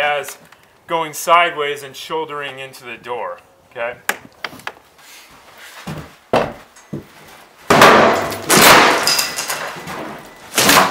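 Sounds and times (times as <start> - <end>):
door crashing through wooden jamb: 7.7 - 10.9
wood splitting: 7.7 - 10.9.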